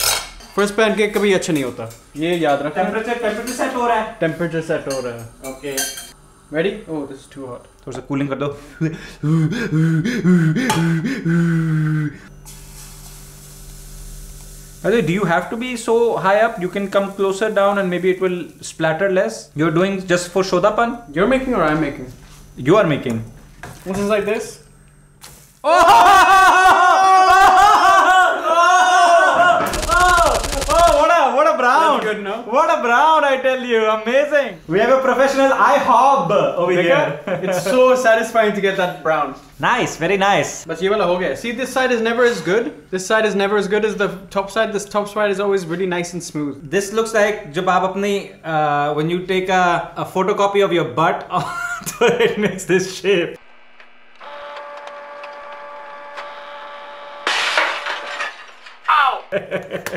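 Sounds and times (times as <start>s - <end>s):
steady hum: 0.1s - 25.7s
fast rattling sharp cracks: 29.7s - 31.1s
glass cracking and shattering: 57.2s - 59.0s.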